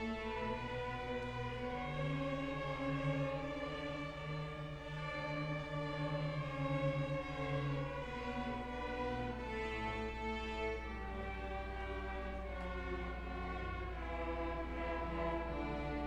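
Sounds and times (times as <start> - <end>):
string orchestra bowed notes: 0.0 - 16.0.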